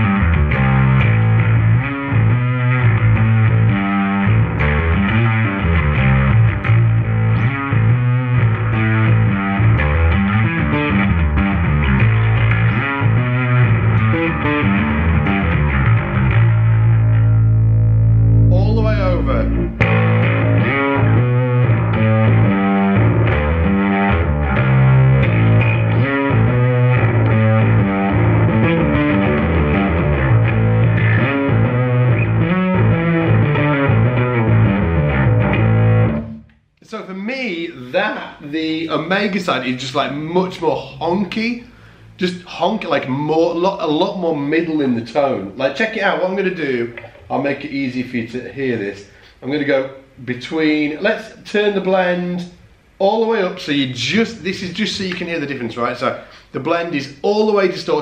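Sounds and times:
distorted electric bass riffing: 0:00.0 - 0:36.5.

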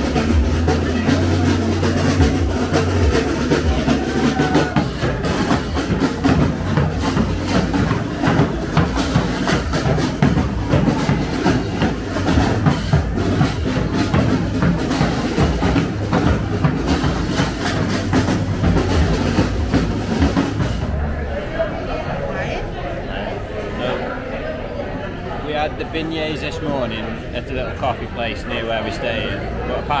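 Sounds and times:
drumline playing: 0:00.0 - 0:21.2.

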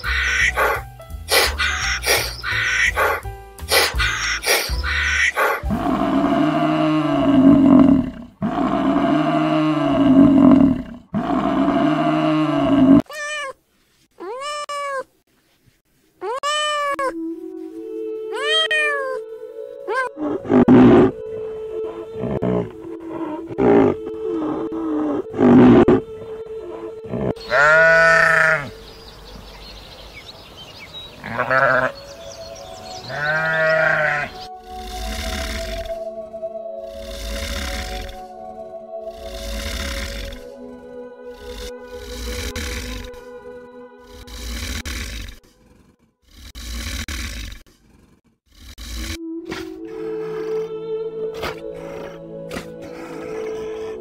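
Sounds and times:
short animal calls: 0:00.0 - 0:05.6
steady music tones: 0:00.0 - 0:08.2, 0:19.2 - 0:29.9, 0:31.6 - 0:44.8, 0:49.2 - 0:54.0
animal roars: 0:05.4 - 0:13.0, 0:20.2 - 0:21.2, 0:21.8 - 0:28.7, 0:33.1 - 0:36.1, 0:36.8 - 0:38.3, 0:39.1 - 0:40.6, 0:41.3 - 0:43.3, 0:44.0 - 0:54.0.

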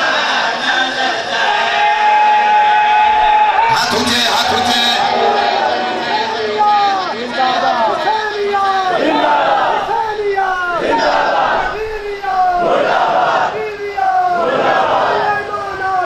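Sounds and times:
crowd of men shouting together: 0:00.0 - 0:16.0.

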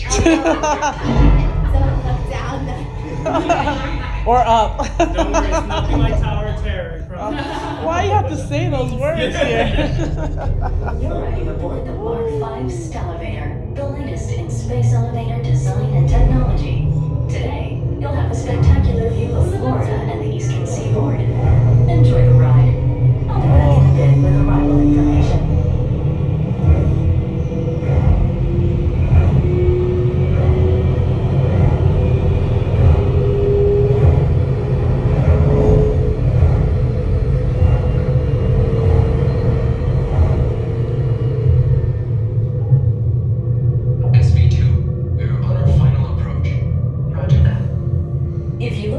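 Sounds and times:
people talking: 0:00.0 - 0:25.6, 0:44.0 - 0:47.7, 0:48.6 - 0:48.9
steady low rumble: 0:00.0 - 0:48.9.

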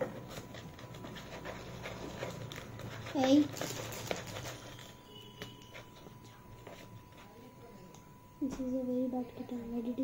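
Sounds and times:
kitten rustling in cardboard box: 0:00.2 - 0:05.0.

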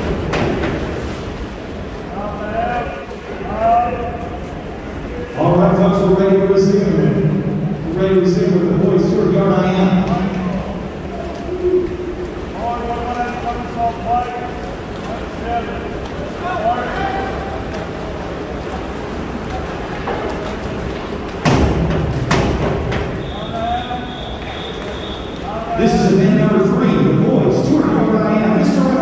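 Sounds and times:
splashing water: 0:06.1 - 0:25.6.

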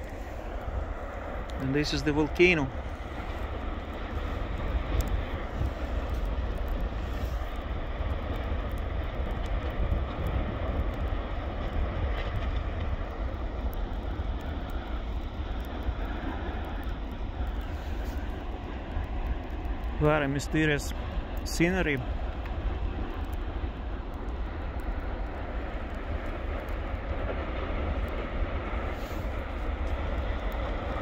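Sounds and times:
lava fountain roaring: 0:00.0 - 0:31.0.

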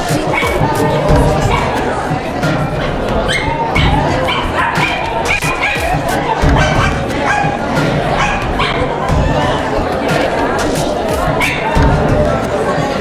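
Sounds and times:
low beat: 0:00.0 - 0:13.0
voices: 0:00.0 - 0:13.0
dog yipping: 0:03.3 - 0:06.0, 0:08.2 - 0:08.8, 0:11.4 - 0:11.7.

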